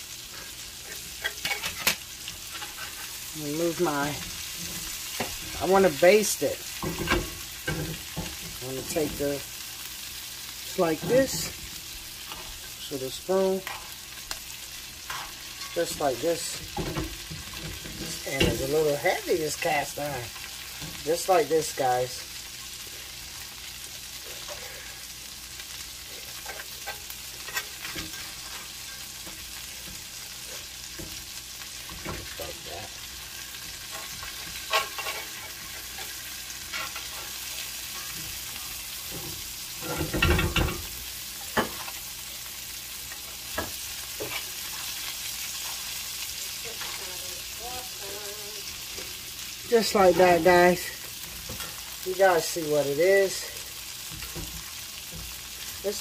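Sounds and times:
butter sizzling in a skillet: 0:00.0 - 0:56.0
metal spoon scraping a pan: 0:00.3 - 0:06.0, 0:13.6 - 0:14.3, 0:15.0 - 0:21.0, 0:25.6 - 0:42.2, 0:43.1 - 0:47.2.

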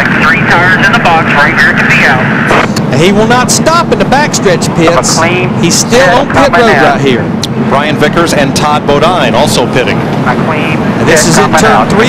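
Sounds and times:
commentator talking: 0:00.0 - 0:12.0
race car engines droning: 0:00.0 - 0:12.0.

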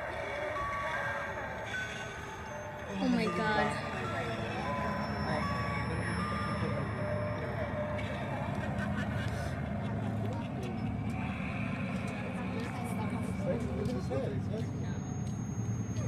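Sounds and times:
indistinct chatter of voices: 0:00.0 - 0:16.0
held electronic tones: 0:00.6 - 0:08.9
steady low rumble: 0:02.8 - 0:16.0.

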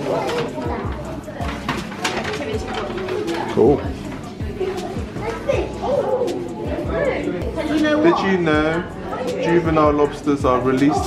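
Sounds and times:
murmured voices: 0:00.0 - 0:11.0.

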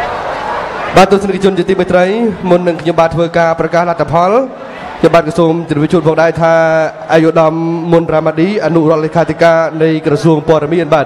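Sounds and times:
man announcing over pa: 0:00.9 - 0:11.0.

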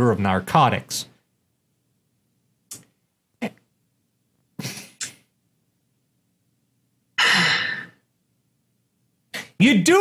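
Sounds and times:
person sighing: 0:07.2 - 0:08.0.

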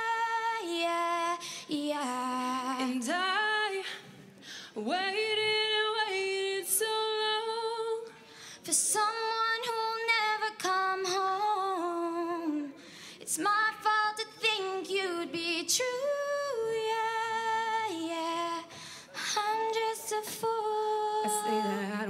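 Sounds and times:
girls singing unaccompanied: 0:19.3 - 0:22.0.

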